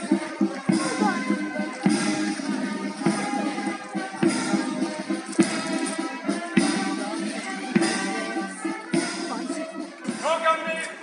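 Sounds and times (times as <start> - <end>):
drum beat: 0.0 - 10.8
brass band playing a march: 0.0 - 11.0.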